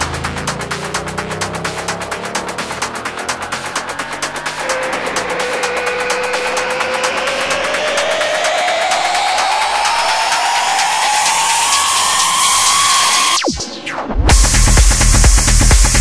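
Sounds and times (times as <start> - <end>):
synth tone rising in pitch: 0.6 - 14.5.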